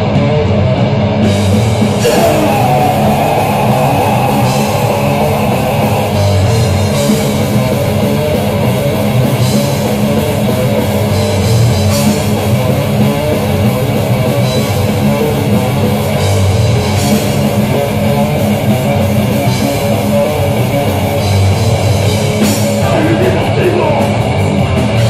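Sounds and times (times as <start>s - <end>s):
drum kit: 0.0s - 25.0s
electric guitars: 0.0s - 25.0s.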